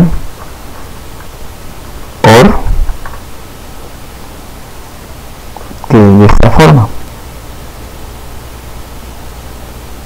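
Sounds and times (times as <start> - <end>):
man speaking: 0.0 - 0.2, 2.2 - 2.8, 5.7 - 7.0
steady background hiss: 0.0 - 10.0.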